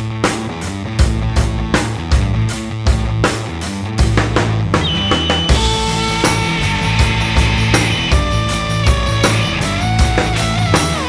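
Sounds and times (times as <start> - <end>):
distorted electric guitars: 0.0 - 11.0
rock band playing: 0.0 - 11.0
held high guitar note: 4.8 - 9.8.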